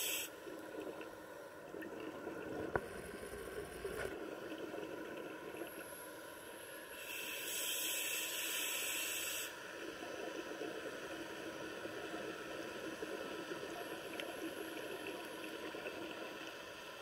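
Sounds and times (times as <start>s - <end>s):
steady underwater noise: 0.0s - 17.0s.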